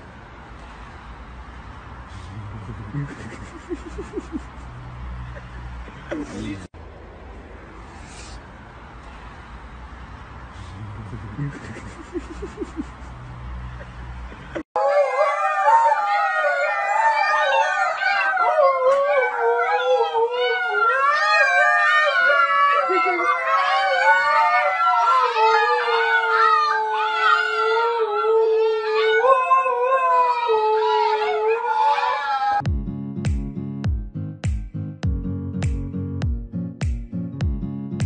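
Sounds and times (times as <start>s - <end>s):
dog howling: 14.8s - 32.6s.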